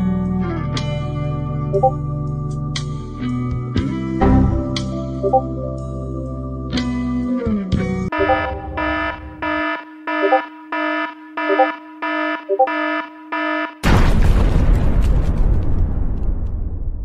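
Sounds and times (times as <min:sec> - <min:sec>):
electronic alarm beeping: 0:01.8 - 0:02.0, 0:05.2 - 0:05.4, 0:08.1 - 0:13.8
loud explosion sound effect: 0:13.8 - 0:17.0.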